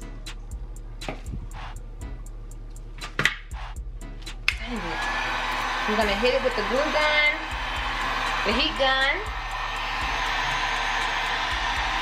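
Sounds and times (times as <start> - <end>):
background music with ticking beat: 0.0 - 12.0.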